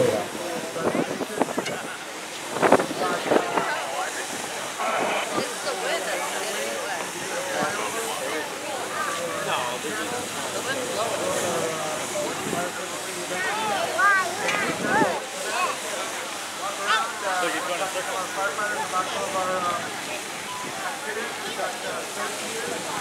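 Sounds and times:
onlookers chattering: 0.0s - 23.0s
water spray hissing: 0.1s - 17.2s.

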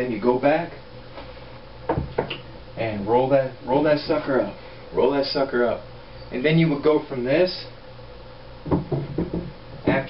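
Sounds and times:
wooden stick knocking on desk: 8.7s - 10.0s.

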